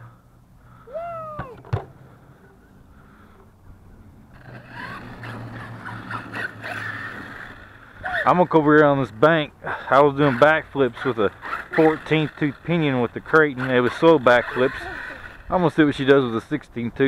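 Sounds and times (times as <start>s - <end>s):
rc truck motor and tyres: 2.3s - 16.9s.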